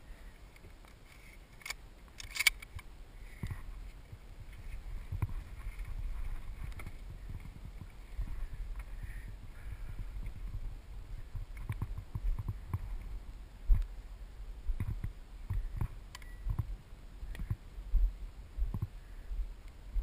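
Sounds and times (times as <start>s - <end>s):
rifle handling click: 1.6s - 2.9s
footsteps on dirt: 3.4s - 13.9s.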